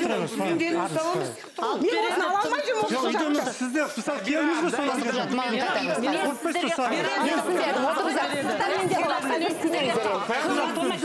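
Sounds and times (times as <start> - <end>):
people talking at once: 0.0 - 11.0.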